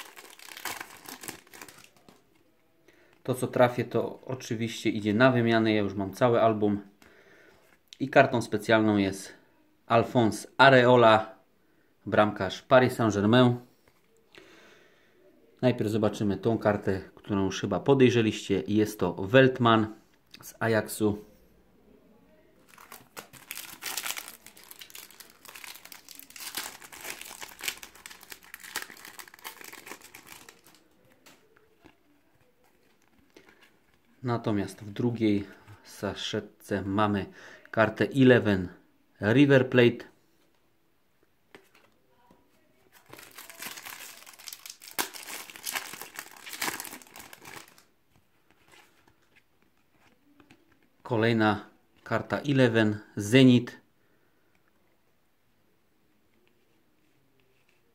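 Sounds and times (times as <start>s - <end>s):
foil packet crinkling: 0.0s - 2.2s, 22.6s - 30.8s, 42.9s - 47.9s.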